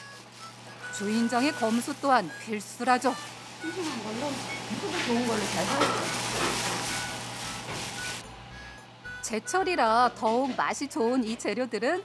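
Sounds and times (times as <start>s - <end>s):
plastic bags rustling: 0.0s - 8.2s.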